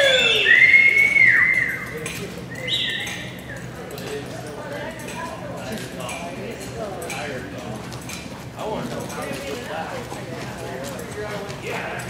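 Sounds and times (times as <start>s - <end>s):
spectators whistling: 0.0s - 3.8s.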